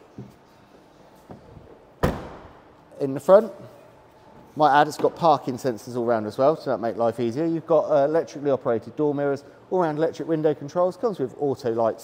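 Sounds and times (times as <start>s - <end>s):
car tailgate slamming: 2.0s - 2.7s.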